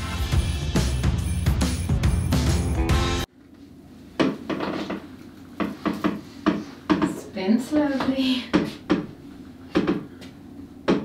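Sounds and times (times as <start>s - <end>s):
background music: 0.0s - 3.3s.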